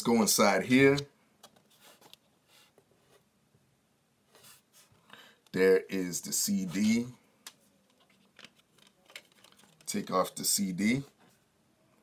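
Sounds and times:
cardboard rustling and clicks: 7.8 - 10.1.

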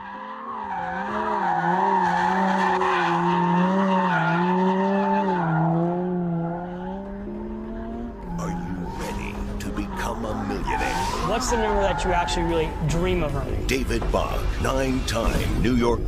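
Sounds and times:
tyres squealing: 8.3 - 13.3.

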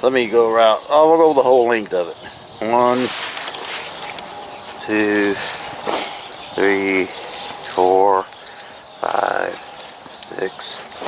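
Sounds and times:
footsteps on dry leaves: 2.8 - 11.0.

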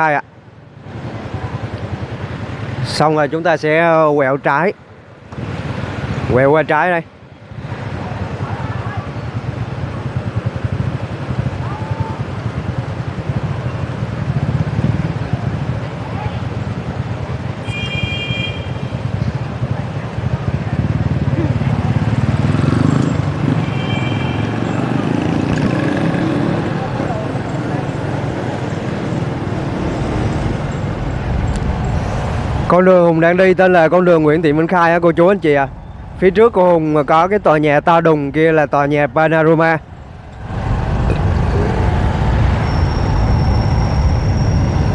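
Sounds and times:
traffic rumble: 0.0 - 44.9
vehicle horn short beeps: 17.6 - 18.9, 23.6 - 24.6.

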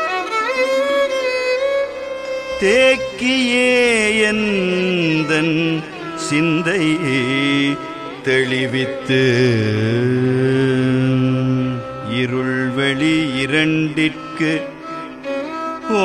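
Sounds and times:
violin: 0.0 - 16.0
man singing a hymn: 2.6 - 14.8.

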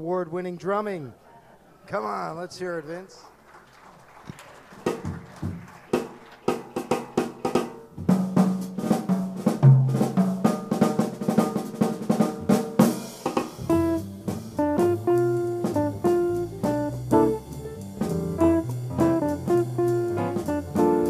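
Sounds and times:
jazz drum kit solo: 4.8 - 21.0
jazz band playing: 6.7 - 21.0.

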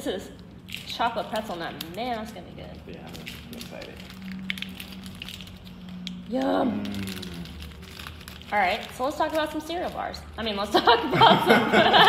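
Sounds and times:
wrappers crinkling: 0.3 - 11.0.

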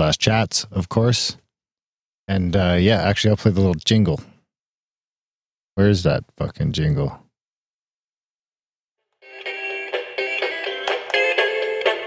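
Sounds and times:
promotional jingle with beat: 9.3 - 12.0.

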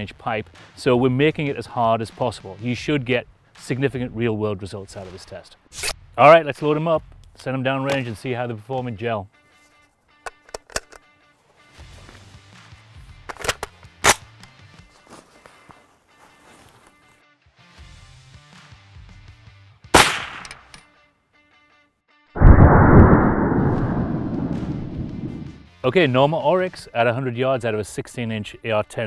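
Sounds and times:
faint background music: 0.0 - 21.9, 25.7 - 29.0
metallic rifle handling clicks: 10.2 - 11.1, 13.3 - 14.2, 20.4 - 20.9
rifle shot: 20.0 - 20.7, 22.4 - 25.6
deep boom: 22.4 - 25.6.

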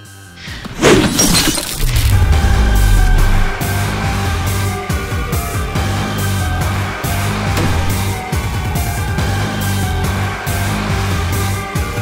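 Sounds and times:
crash with breaking glass: 0.8 - 3.9, 7.6 - 8.2
heavy bass-laden music: 1.8 - 11.6.

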